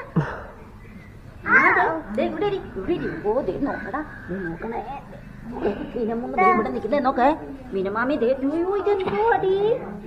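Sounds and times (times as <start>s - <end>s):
adults talking: 0.0s - 10.0s.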